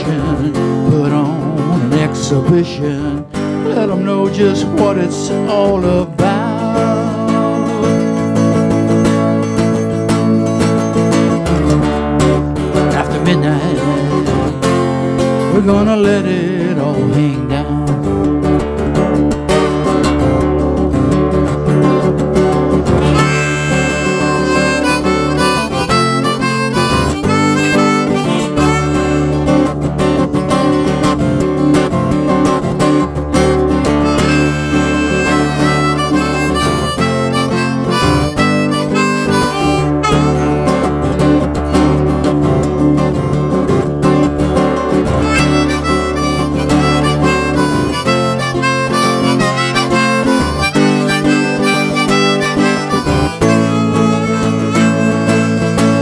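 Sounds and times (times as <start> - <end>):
strummed acoustic guitar: 0.0 - 56.0
harmonica solo: 6.4 - 15.5, 22.8 - 31.7, 33.3 - 42.2, 45.0 - 56.0.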